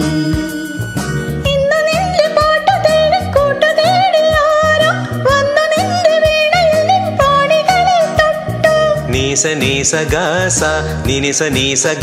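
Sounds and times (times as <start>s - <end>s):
woman singing: 0.0s - 10.3s
backing track with beat: 0.0s - 12.0s.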